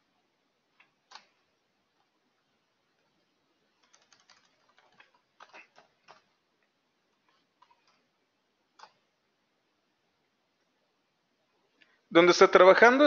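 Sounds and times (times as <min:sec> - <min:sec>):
computer keyboard typing: 0:00.8 - 0:02.1, 0:03.7 - 0:06.4, 0:07.2 - 0:08.1, 0:08.7 - 0:09.0.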